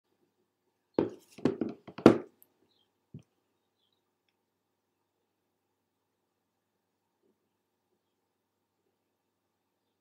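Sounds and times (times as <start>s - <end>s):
handling knocks and thumps: 1.0s - 2.3s.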